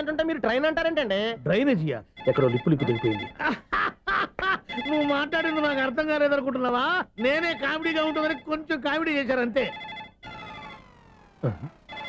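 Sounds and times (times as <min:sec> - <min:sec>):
men talking: 0:00.0 - 0:03.4
telephone ringing: 0:02.1 - 0:03.4, 0:04.6 - 0:06.3, 0:07.2 - 0:12.0.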